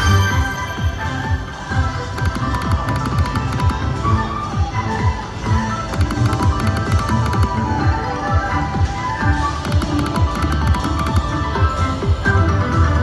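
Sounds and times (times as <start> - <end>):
slot machine game music and chimes: 0.0 - 2.6.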